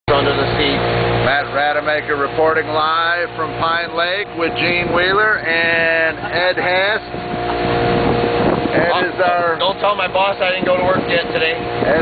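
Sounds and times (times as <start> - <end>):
man talking: 0.1 - 7.2, 8.7 - 12.0
outboard motor running: 0.1 - 12.0.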